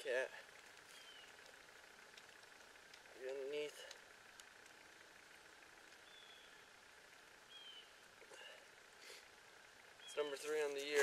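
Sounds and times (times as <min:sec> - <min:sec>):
faint high bird chirps: 0:00.9 - 0:01.4, 0:06.0 - 0:06.8, 0:07.4 - 0:08.4, 0:09.8 - 0:10.8.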